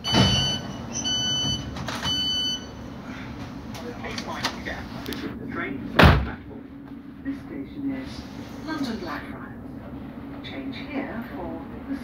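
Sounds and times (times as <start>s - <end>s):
train running rumble: 3.3s - 12.0s
thump: 6.0s - 6.4s.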